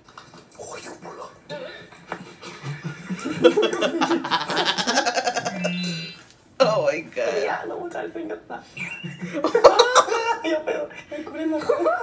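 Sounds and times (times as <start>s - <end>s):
woman laughing hard: 2.5s - 6.0s, 9.0s - 11.0s.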